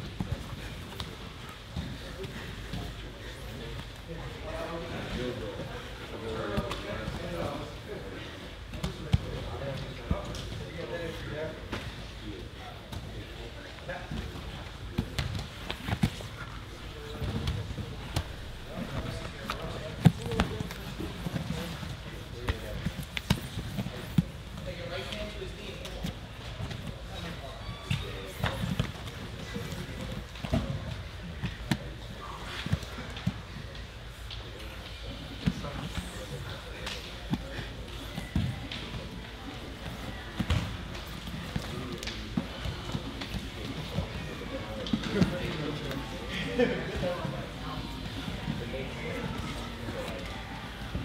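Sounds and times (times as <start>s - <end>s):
murmur of voices: 0.0s - 51.0s.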